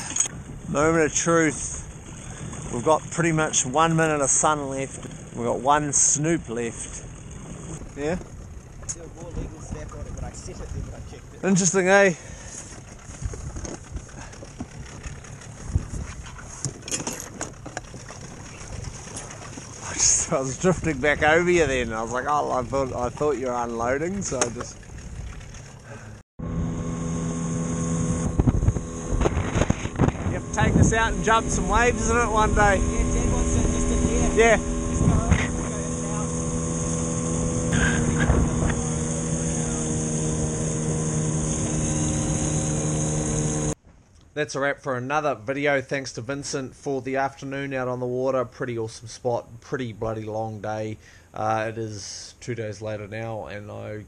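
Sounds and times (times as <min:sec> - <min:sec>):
wind buffeting microphone: 0:00.0 - 0:12.0, 0:12.6 - 0:25.7, 0:28.0 - 0:43.1
water lapping at inflatable boat: 0:00.0 - 0:26.2, 0:27.0 - 0:43.8
outboard motor running: 0:00.0 - 0:43.8
knocks and rattles: 0:12.8 - 0:19.8.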